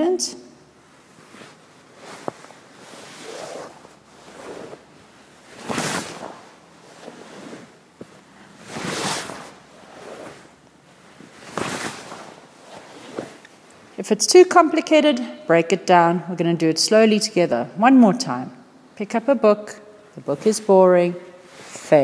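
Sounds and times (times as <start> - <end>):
fabric swishing on microphone: 0.8 - 13.9, 21.4 - 22.0.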